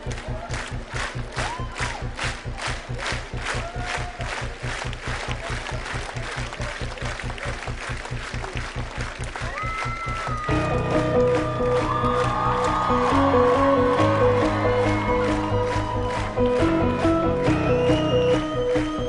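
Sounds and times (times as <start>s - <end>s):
crowd clapping in time: 0.0s - 19.0s
kick drum beat: 0.0s - 19.0s
crowd shouts: 9.4s - 16.4s.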